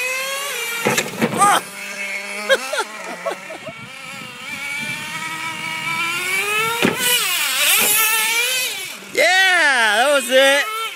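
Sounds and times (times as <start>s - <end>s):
small engine whining: 0.0s - 10.9s.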